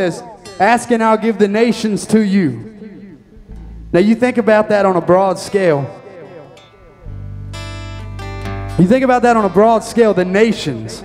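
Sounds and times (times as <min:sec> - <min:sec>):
acoustic guitar chords: 0:00.0 - 0:11.0
electric bass: 0:03.4 - 0:04.4, 0:07.0 - 0:11.0.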